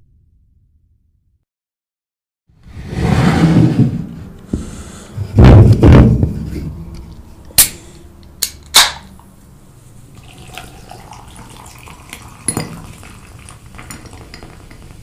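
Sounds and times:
knock: 5.4s - 6.4s
fizzy drink pouring into glass: 10.1s - 15.0s.

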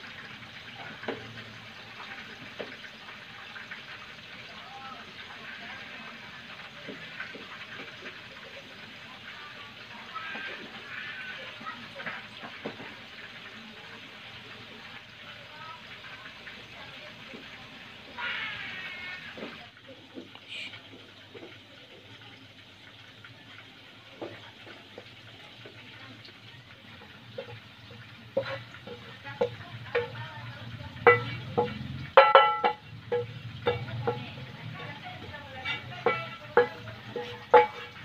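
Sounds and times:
spatula stirring in a pan: 0.0s - 38.0s
vegetables sizzling in a pan: 0.0s - 38.0s.

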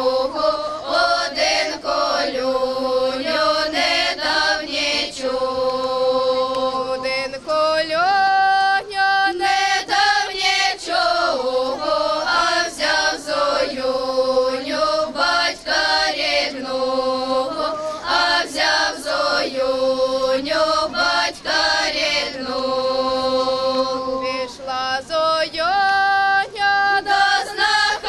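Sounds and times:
women singing folk song in harmony: 0.0s - 28.0s.

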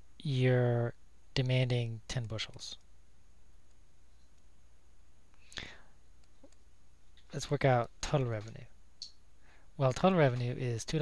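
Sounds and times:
faint recording hiss: 0.0s - 11.0s
low electrical hum: 0.0s - 11.0s
person breathing: 5.4s - 6.1s, 9.4s - 9.8s.

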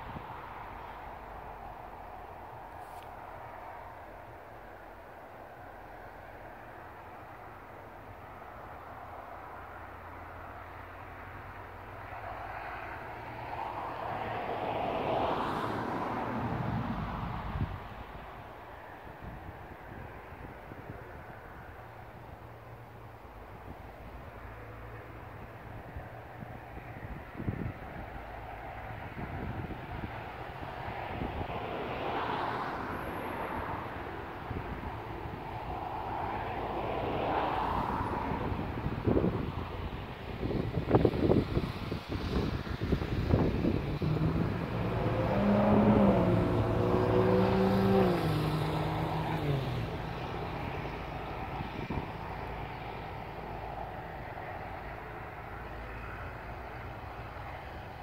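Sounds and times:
vehicle engine passing: 40.5s - 53.5s.

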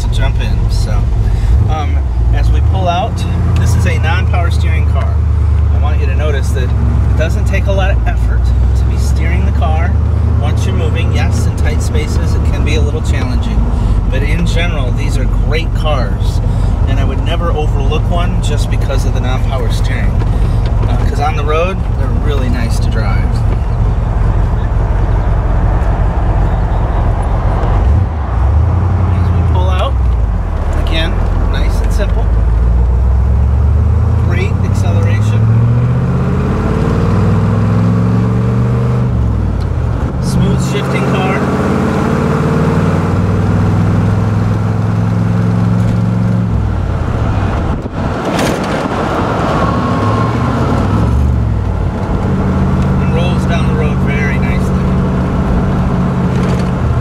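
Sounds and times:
car engine running: 0.0s - 57.0s
road noise: 0.0s - 57.0s
wind noise: 46.6s - 53.0s.

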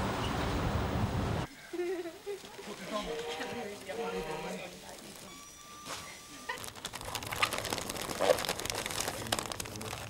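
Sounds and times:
plastic bags rustling: 4.7s - 10.0s.

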